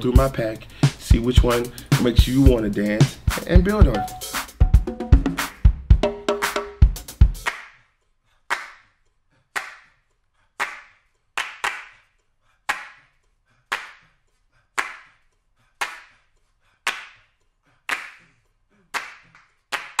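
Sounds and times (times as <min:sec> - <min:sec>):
funk drum groove: 0:00.0 - 0:07.5
single hand claps with echo: 0:07.4 - 0:07.7.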